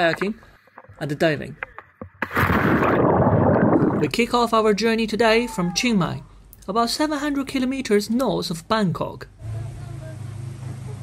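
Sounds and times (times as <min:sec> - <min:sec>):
sea water churning and splashing: 0:01.9 - 0:04.2.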